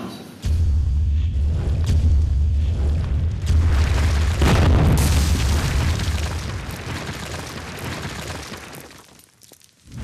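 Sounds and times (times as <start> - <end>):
crash of breaking rubble: 3.4 - 10.0.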